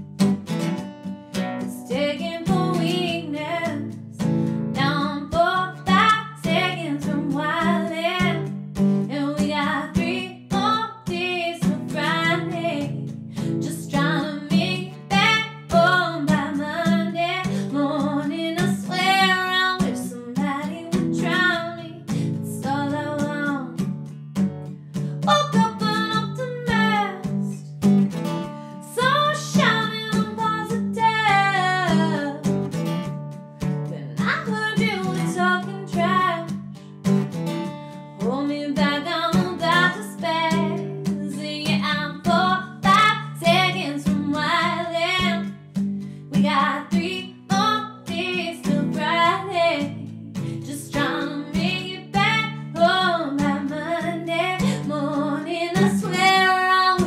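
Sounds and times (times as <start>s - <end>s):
strummed acoustic guitar: 0.0s - 57.0s
woman singing: 1.6s - 24.2s, 25.2s - 27.7s, 28.7s - 32.7s, 33.8s - 36.8s, 38.2s - 57.0s.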